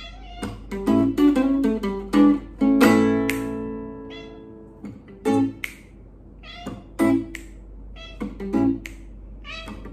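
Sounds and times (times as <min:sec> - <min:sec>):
cat meowing: 0:00.0 - 0:00.8, 0:04.0 - 0:04.7, 0:06.4 - 0:07.1, 0:08.0 - 0:08.5, 0:09.4 - 0:09.9
guitar chords strummed: 0:00.4 - 0:05.7, 0:06.5 - 0:09.9.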